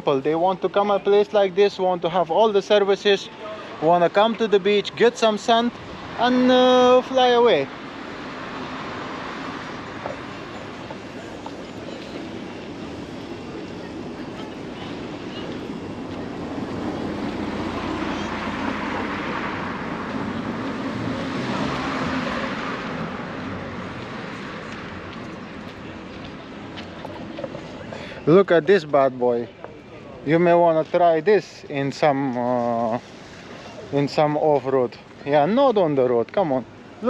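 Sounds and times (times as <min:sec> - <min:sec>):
passing traffic: 0:00.0 - 0:37.0
wind: 0:00.0 - 0:37.0.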